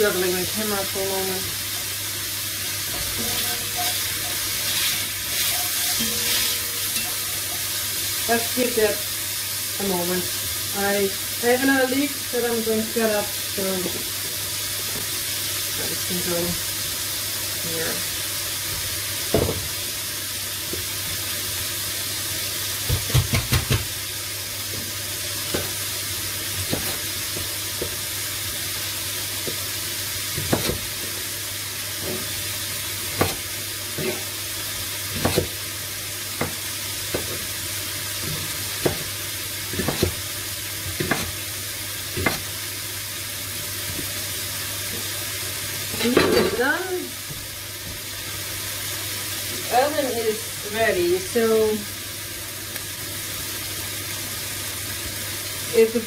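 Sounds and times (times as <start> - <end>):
bacon sizzling in a pan: 0.0 - 56.0
knife chopping on cutting board: 26.6 - 27.0, 30.4 - 30.9, 33.2 - 33.4, 35.2 - 35.5, 36.4 - 37.4, 38.3 - 39.1, 39.7 - 40.2, 41.0 - 41.4, 42.2 - 42.5.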